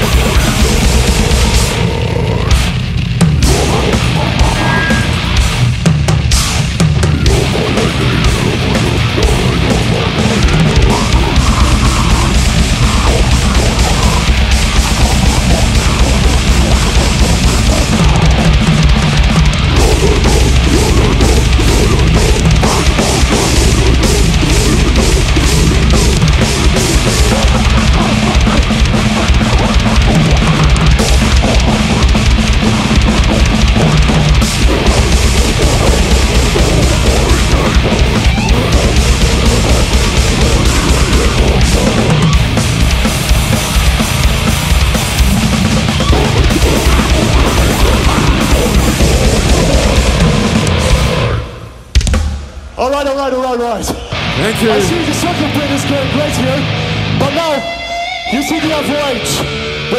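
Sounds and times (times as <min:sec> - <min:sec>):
down-tuned bass and guitar: 0:00.0 - 0:52.8, 0:53.9 - 0:59.9
fast dense drums: 0:00.0 - 0:57.6
goregrind band playing live: 0:00.0 - 0:59.9
voice through loudspeakers: 0:52.8 - 0:57.7.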